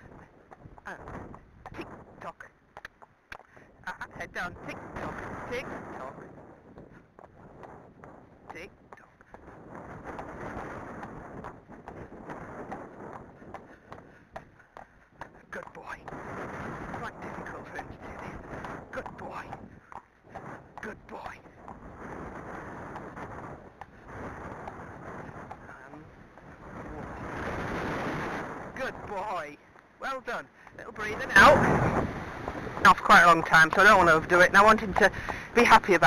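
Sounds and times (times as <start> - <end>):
wind on microphone: 0.0 - 36.0.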